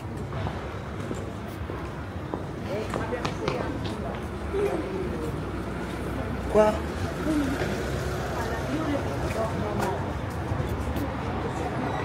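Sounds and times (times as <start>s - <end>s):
low traffic rumble: 0.0s - 12.0s
passers-by talking: 0.0s - 12.0s.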